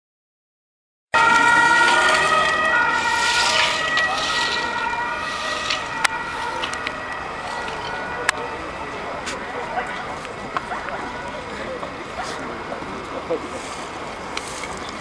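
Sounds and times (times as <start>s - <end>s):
emergency vehicle siren: 1.1s - 14.7s.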